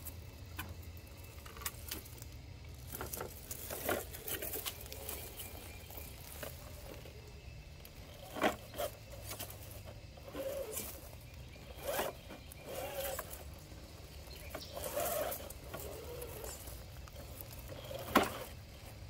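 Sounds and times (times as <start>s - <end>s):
rc car motor and gear whine: 0.0s - 19.0s
tyres scraping on rock: 0.0s - 19.0s.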